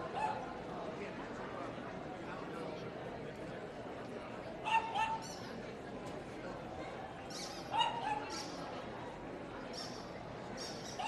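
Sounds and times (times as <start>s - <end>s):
dog yipping: 7.8s - 8.2s.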